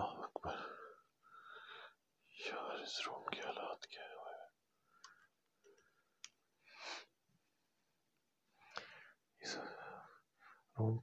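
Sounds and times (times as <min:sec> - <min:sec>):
man whispering: 0:00.0 - 0:00.9, 0:02.2 - 0:04.7, 0:09.4 - 0:11.0
faint clicks: 0:04.9 - 0:06.4.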